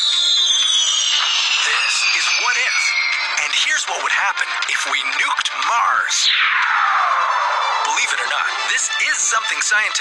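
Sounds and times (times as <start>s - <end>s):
falling bomb whistle: 0.0s - 3.4s
background music: 0.1s - 10.0s.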